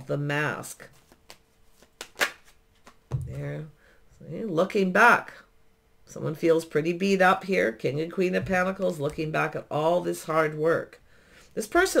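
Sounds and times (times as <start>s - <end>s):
cards clicking and brushing: 0.9s - 3.0s.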